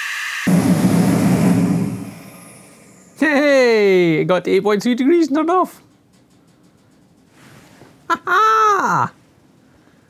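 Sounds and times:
man's wordless exclamation: 8.4s - 9.2s
breath: 9.6s - 10.0s.

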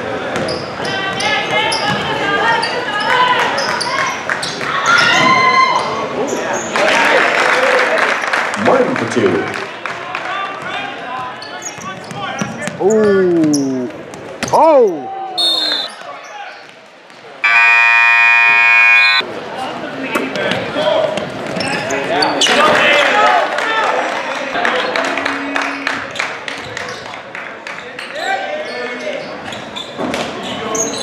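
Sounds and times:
scoreboard buzzer: 17.4s - 19.2s.

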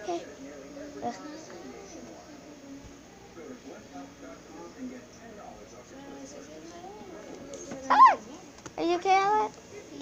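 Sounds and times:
faint background talking: 0.0s - 10.0s.

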